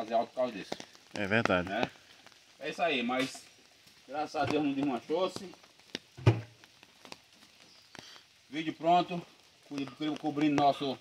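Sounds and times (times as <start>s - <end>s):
dull thump: 6.2s - 6.6s.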